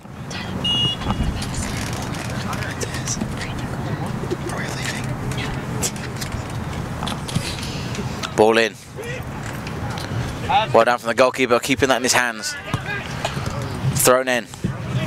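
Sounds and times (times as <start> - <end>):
passing traffic: 0.0 - 15.0
wind: 0.0 - 15.0
distant shouts: 8.3 - 10.8, 12.2 - 13.8.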